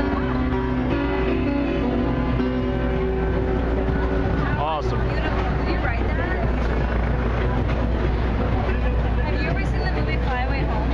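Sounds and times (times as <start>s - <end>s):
traffic rumble: 0.0s - 10.9s
people talking: 3.8s - 10.9s.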